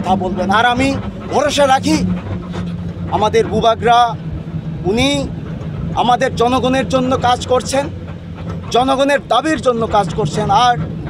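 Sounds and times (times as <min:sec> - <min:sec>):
man speaking loudly: 0:00.0 - 0:02.1, 0:03.1 - 0:04.2, 0:06.0 - 0:07.9, 0:08.7 - 0:10.8
low engine hum: 0:00.0 - 0:11.0.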